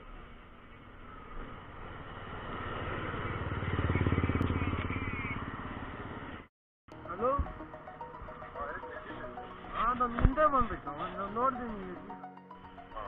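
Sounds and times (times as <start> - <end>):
motorcycle engine revving: 1.0 - 6.5.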